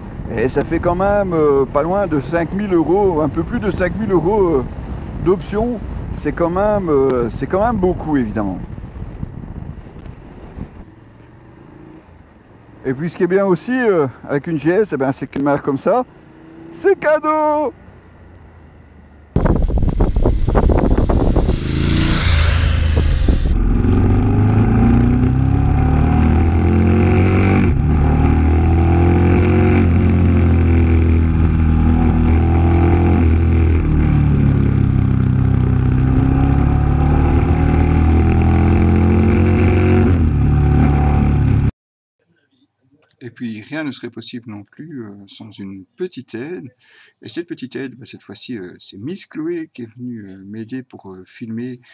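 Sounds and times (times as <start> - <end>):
motorcycle engine while riding: 8.6 - 12.8, 16.1 - 16.9, 17.9 - 41.7.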